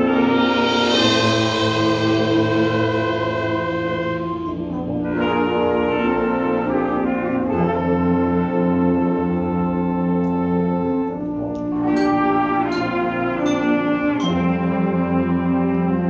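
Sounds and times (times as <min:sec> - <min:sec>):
brass and saxophone band playing: 0:00.0 - 0:16.0
drums: 0:00.0 - 0:16.0.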